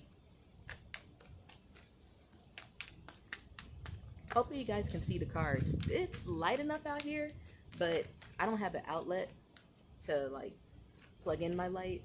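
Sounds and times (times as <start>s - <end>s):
cards being shuffled: 0.0s - 5.0s, 6.9s - 9.9s, 10.8s - 11.7s
faint low rumble: 4.0s - 9.0s.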